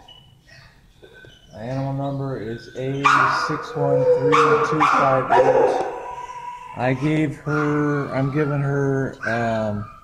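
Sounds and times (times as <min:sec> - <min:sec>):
dog barking: 0:03.0 - 0:06.8, 0:07.5 - 0:08.4.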